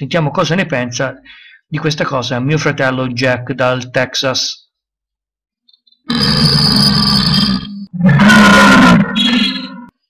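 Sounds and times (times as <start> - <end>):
man burping loudly: 6.1 - 9.9.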